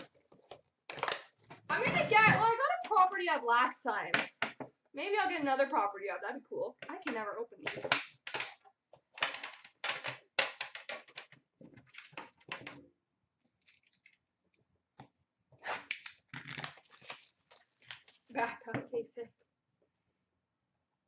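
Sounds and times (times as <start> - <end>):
plastic wrap crinkling and tearing: 13.6 - 14.2, 15.6 - 18.4.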